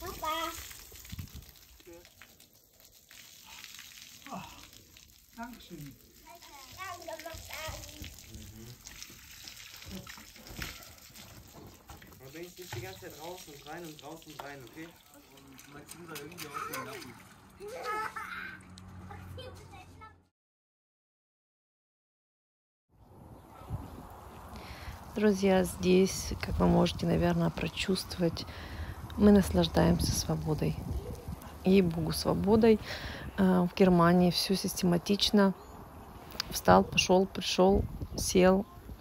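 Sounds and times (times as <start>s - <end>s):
hose water splattering on concrete: 0.0s - 18.9s.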